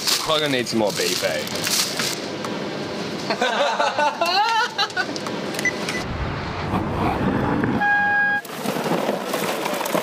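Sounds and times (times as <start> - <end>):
vehicle rumble: 5.0 - 10.0
car horn toot: 7.8 - 8.4.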